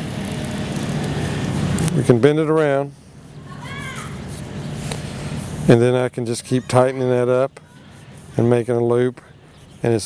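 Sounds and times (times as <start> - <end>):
engine running with low hum: 0.0 - 6.2.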